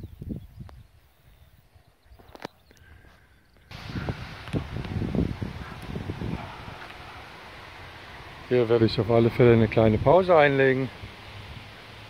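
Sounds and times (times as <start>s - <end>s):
wind rushing on microphone: 0.0s - 1.6s, 3.7s - 12.0s.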